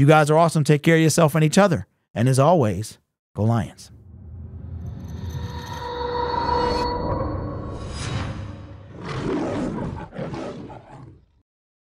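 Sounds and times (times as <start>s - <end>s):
lion roaring: 8.8s - 11.4s.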